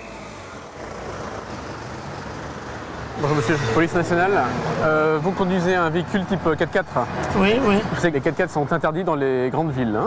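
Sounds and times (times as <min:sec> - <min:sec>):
city street traffic: 0:00.0 - 0:10.0.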